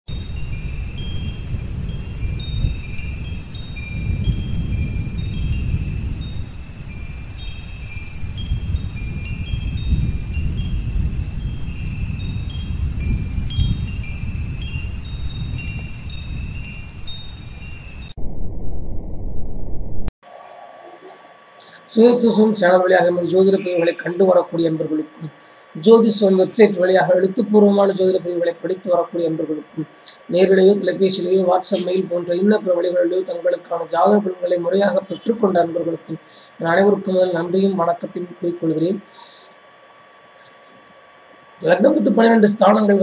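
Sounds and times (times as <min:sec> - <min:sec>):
wind chimes tinkling: 0:00.1 - 0:18.2
steady low rumbling: 0:00.1 - 0:20.1.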